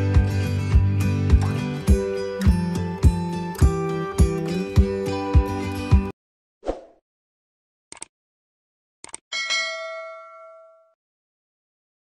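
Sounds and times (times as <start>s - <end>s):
notification bell ding: 9.3s - 11.0s.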